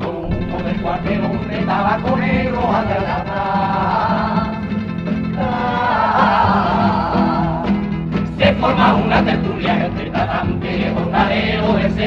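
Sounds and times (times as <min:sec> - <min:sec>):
guitar accompaniment: 0:00.0 - 0:12.0
male choir singing in harmony: 0:00.0 - 0:12.0.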